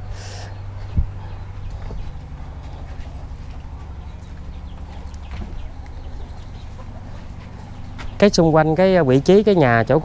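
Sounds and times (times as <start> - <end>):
chickens clucking: 0.0 - 8.7
low steady rumble: 0.0 - 10.0.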